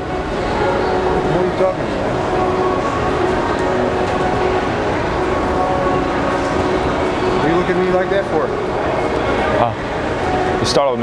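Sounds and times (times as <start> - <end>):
escalators rumbling and humming: 0.0 - 11.0.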